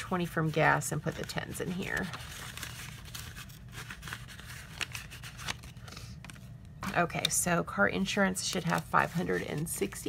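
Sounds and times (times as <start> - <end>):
paper banknotes rustling: 0.0 - 6.6, 8.4 - 10.0.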